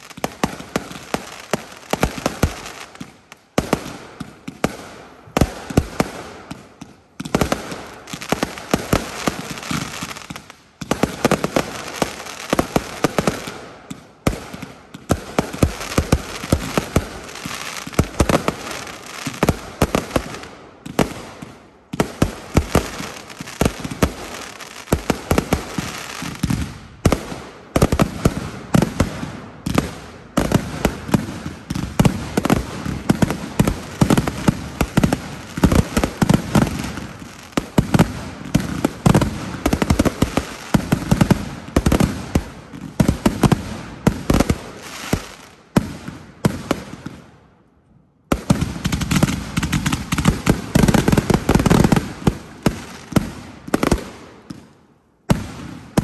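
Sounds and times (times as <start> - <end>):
fireworks bangs and bursts: 0.0 - 47.6, 48.2 - 56.0.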